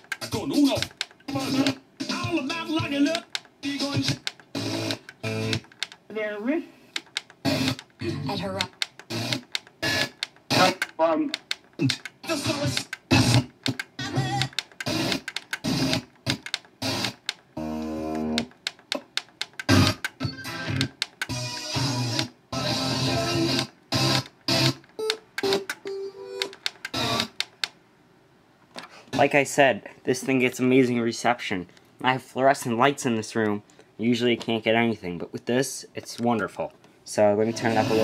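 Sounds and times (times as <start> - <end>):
radio music snatches: 0.0 - 5.7, 7.0 - 17.2, 19.6 - 24.8
radio talk snatches: 0.2 - 4.9, 7.4 - 11.0, 11.8 - 13.4.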